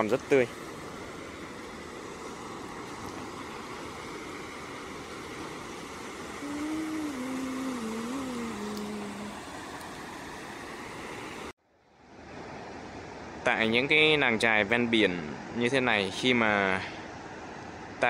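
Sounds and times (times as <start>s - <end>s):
surf rushing: 0.0s - 11.5s
wind: 0.0s - 18.0s
low wavering tone: 6.4s - 9.4s.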